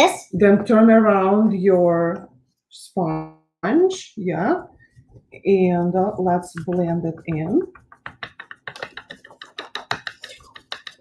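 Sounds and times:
sponge dabbing on paper: 4.3s - 11.0s.

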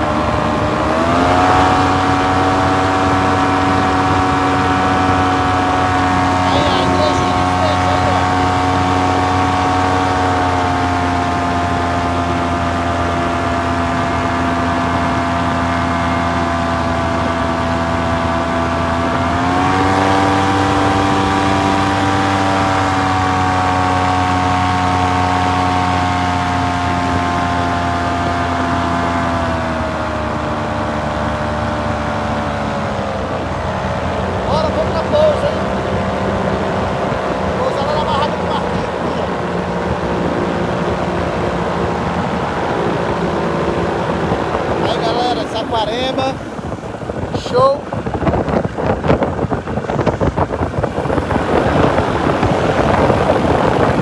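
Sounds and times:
paramotor engine running: 0.0s - 54.0s.

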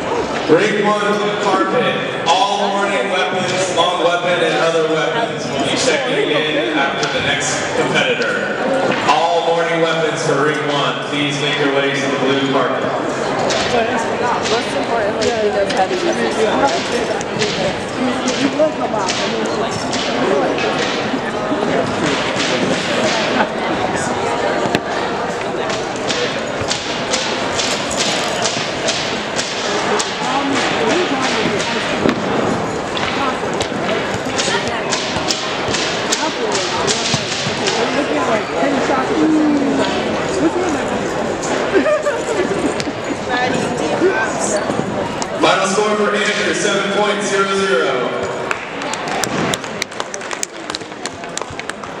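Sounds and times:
busy gymnasium hall noise: 0.0s - 52.0s
crowd chatter: 0.0s - 52.0s
scattered hand claps: 25.7s - 32.2s, 32.9s - 38.0s, 48.4s - 52.0s.

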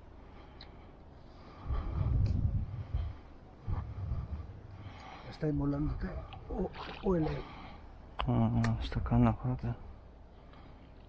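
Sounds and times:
low rumbling on microphone: 1.4s - 7.2s.

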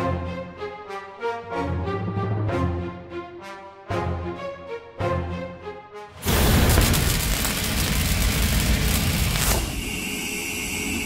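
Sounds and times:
heavy low rumble: 6.2s - 9.8s
noisy crackle: 6.2s - 11.0s
high ringing tone: 9.2s - 11.0s.

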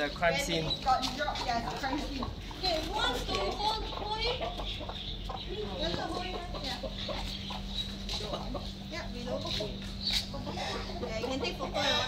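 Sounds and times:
rooster clucking: 0.7s - 12.0s.

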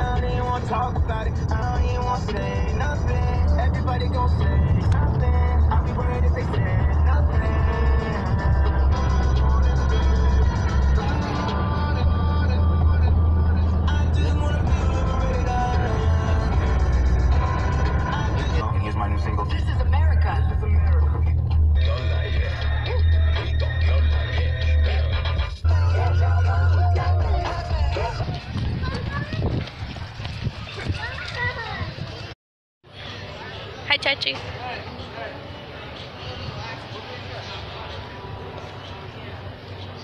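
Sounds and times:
music with singing voice: 0.0s - 29.2s
car driving rumble: 0.0s - 31.6s.

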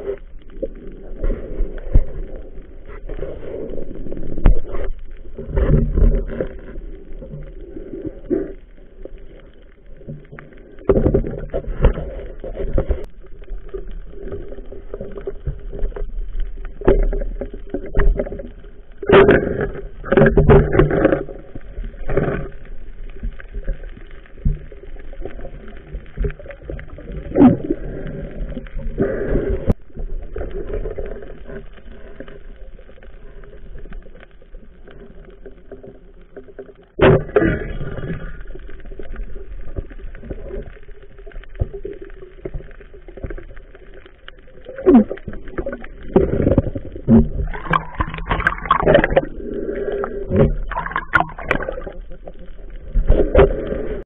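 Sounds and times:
muffled underwater sloshing: 0.0s - 54.0s.

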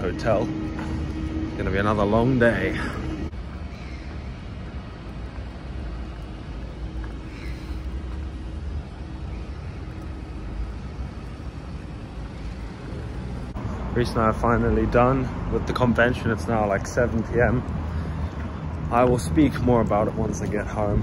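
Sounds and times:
car engines rumbling: 0.0s - 21.0s.

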